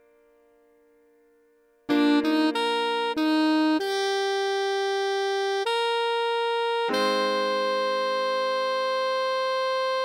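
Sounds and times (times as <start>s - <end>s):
alto sax long note: 1.9s - 10.0s.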